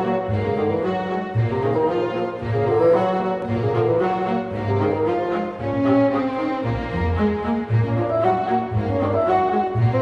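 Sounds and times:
orchestra playing classical music: 0:00.0 - 0:10.0.

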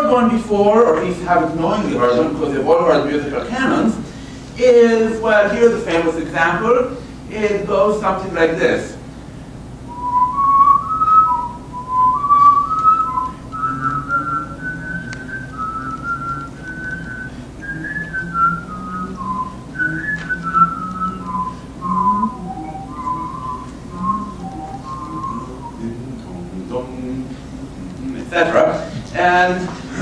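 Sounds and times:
man whistling a melody: 0:09.9 - 0:26.1
lower line of notes: 0:11.3 - 0:26.7.

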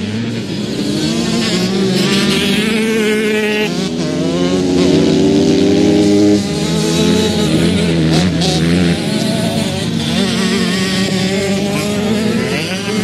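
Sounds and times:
motocross bike engines revving: 0:00.0 - 0:13.0.

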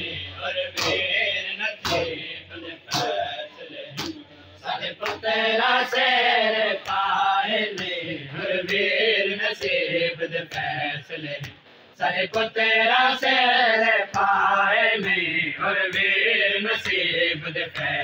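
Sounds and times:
men chanting in unison: 0:00.0 - 0:18.0
chest-beating slaps: 0:00.8 - 0:01.2, 0:01.8 - 0:02.2, 0:02.9 - 0:03.2, 0:04.0 - 0:04.3, 0:05.0 - 0:05.3.

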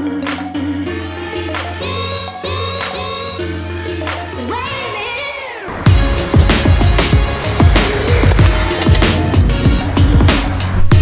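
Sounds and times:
upbeat electronic music: 0:00.0 - 0:11.0.

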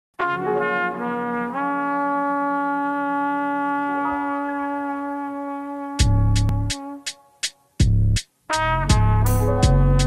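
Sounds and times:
sustained horn chords: 0:00.2 - 0:07.4, 0:08.6 - 0:10.0.

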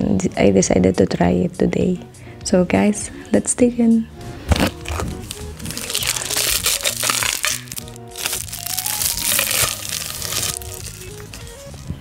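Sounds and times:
background music with melody: 0:00.0 - 0:12.0
food packaging crinkling: 0:04.5 - 0:12.0.

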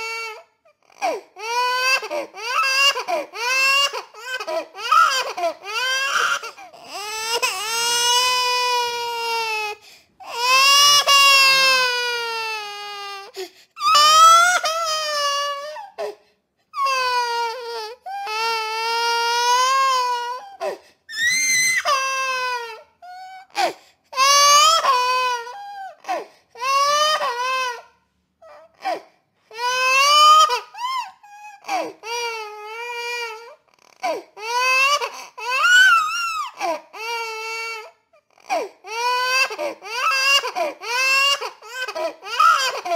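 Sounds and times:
infant crying: 0:00.0 - 0:42.9.

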